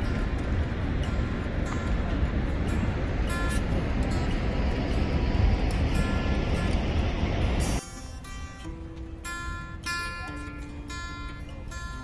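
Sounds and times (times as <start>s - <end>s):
wind buffeting microphone: 0.0s - 10.0s
faint music with held notes: 0.0s - 12.0s.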